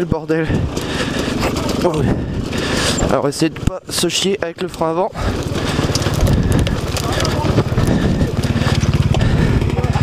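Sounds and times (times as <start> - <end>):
dirt bike engine running: 0.0 - 10.0
rider exclamation: 4.9 - 10.0.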